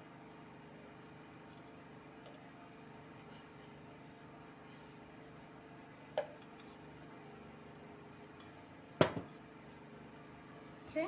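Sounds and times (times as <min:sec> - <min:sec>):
metal bowl clanking on table: 0:08.4 - 0:09.4.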